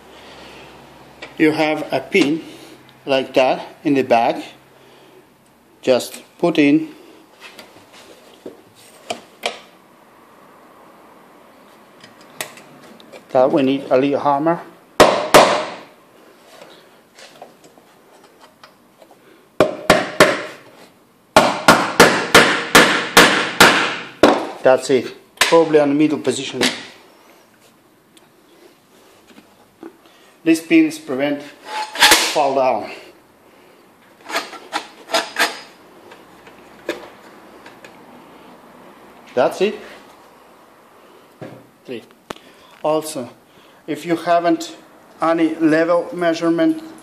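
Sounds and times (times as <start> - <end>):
metal parts scraping: 31.6 - 32.4.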